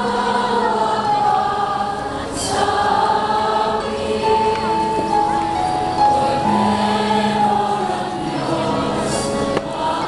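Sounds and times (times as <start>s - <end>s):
choir singing over loudspeakers: 0.0s - 10.0s.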